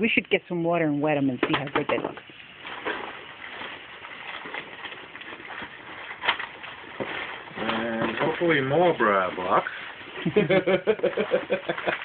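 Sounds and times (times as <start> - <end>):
rustling in a cardboard box: 2.5 - 12.0.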